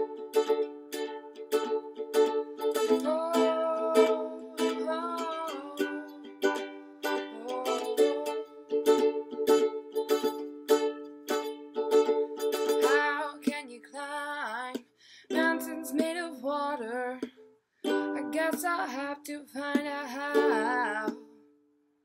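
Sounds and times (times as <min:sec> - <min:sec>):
ukulele strumming chords: 0:00.0 - 0:21.4
person singing wordless line: 0:02.7 - 0:09.0, 0:12.7 - 0:17.4, 0:18.1 - 0:21.3.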